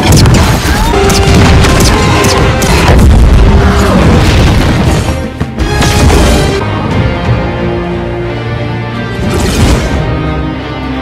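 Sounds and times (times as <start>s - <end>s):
heavy booms and crashes: 0.0s - 6.7s
orchestral action music: 0.0s - 11.0s.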